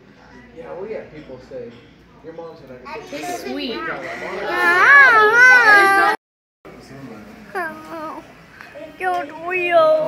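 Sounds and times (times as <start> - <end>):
child wailing: 4.5 - 6.2.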